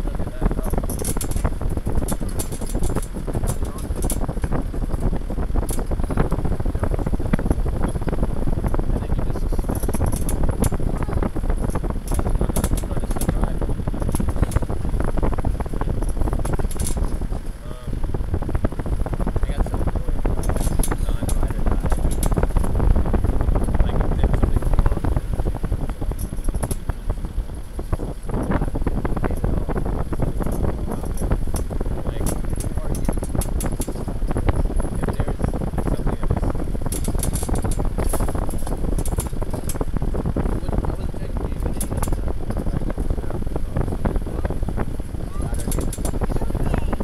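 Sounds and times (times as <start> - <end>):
light clicks and rattles: 0.0 - 18.0, 19.4 - 47.0
vehicle driving on dirt track: 0.0 - 47.0
wind buffeting microphone: 0.0 - 47.0.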